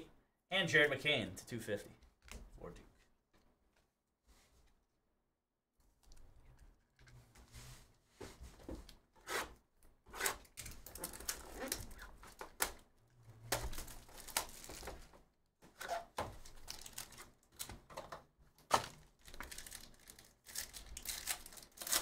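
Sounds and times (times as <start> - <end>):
packaging crinkling and tearing: 10.6 - 12.8, 13.5 - 15.0, 16.4 - 17.8, 18.7 - 22.0.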